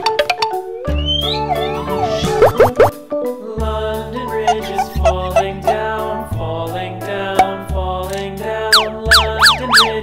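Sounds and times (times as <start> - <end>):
upbeat children's music: 0.0 - 10.0
cartoon rising glides: 1.4 - 2.9, 8.8 - 10.0.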